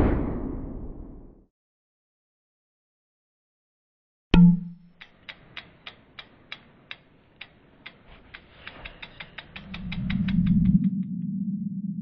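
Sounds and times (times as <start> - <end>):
sharp mechanical ticks speeding up: 4.6 - 11.3
low hum: 8.8 - 12.0.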